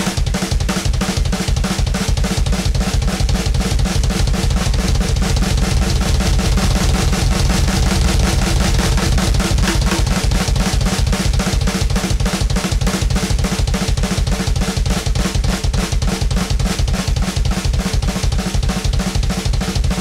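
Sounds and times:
double bass drum kicks: 0:00.0 - 0:20.0
snare and toms strokes: 0:00.0 - 0:20.0.

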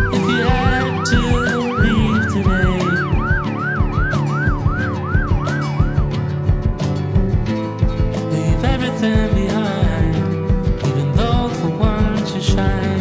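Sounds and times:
emergency siren yelping: 0:00.0 - 0:06.9
background music with steady beat: 0:00.0 - 0:13.0.

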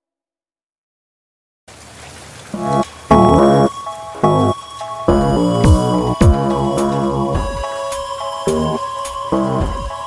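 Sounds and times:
record surface hiss: 0:02.5 - 0:10.0
old film song recording: 0:02.6 - 0:10.0.

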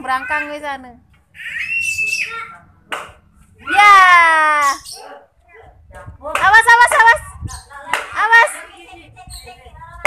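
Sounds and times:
child squealing: 0:01.4 - 0:02.6.

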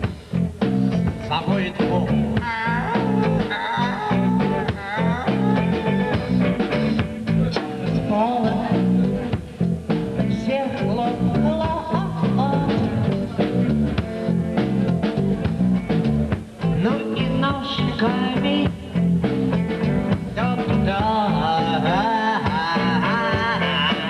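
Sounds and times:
bass guitar: 0:00.0 - 0:24.0
drums: 0:00.0 - 0:24.0
electric guitar: 0:00.0 - 0:24.0
man singing into a microphone: 0:20.3 - 0:24.0.

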